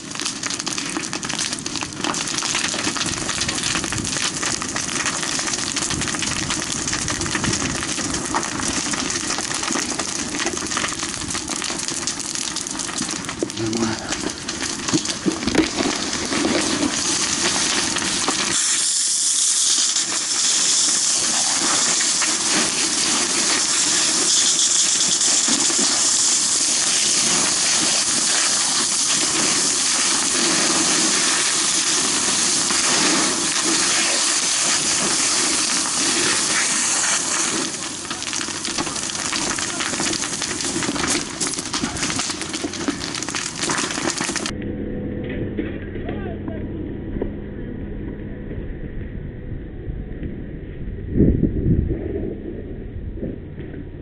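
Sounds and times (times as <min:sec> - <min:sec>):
crackles and knocks: 0:00.0 - 0:18.7, 0:19.9 - 0:47.4, 0:48.0 - 0:54.0
fire hose spraying water: 0:00.0 - 0:44.5.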